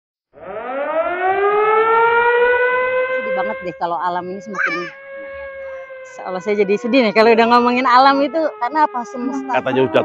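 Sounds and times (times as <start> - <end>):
siren winding up: 0.4 - 10.0.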